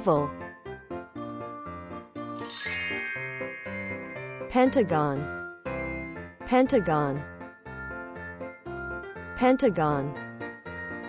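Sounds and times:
light children's music: 0:00.0 - 0:11.0
bright sparkly chime: 0:02.4 - 0:05.3.

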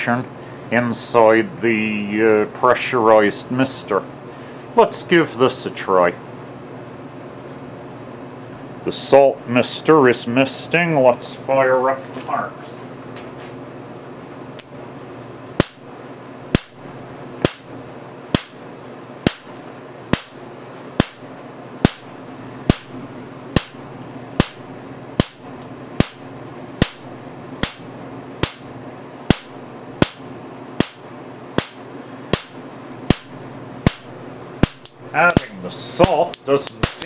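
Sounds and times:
steady low hum: 0:00.0 - 0:37.0
electric spark cracks: 0:15.5 - 0:15.9, 0:16.5 - 0:16.8, 0:17.4 - 0:17.7, 0:18.3 - 0:18.6, 0:19.2 - 0:20.4, 0:21.0 - 0:37.0.

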